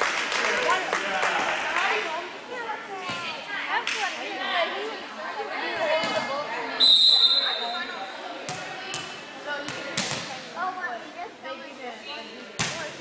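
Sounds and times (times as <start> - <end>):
voices of people: 0.0 - 13.0
referee's whistle: 6.8 - 7.8
volleyball bouncing on gym floor: 8.5 - 10.4, 12.6 - 13.0.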